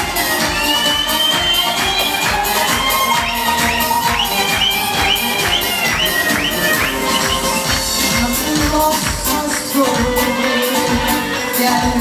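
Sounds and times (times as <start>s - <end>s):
hand drums: 0.0s - 12.0s.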